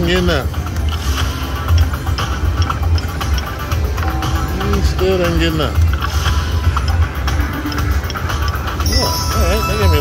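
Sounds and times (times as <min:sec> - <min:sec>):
electronic game music: 0:00.0 - 0:10.0
low casino rumble: 0:00.0 - 0:10.0
chiming win tones: 0:08.8 - 0:10.0.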